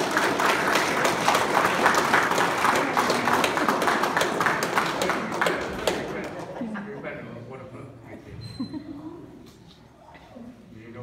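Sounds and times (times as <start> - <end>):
people clapping: 0.0 - 6.6.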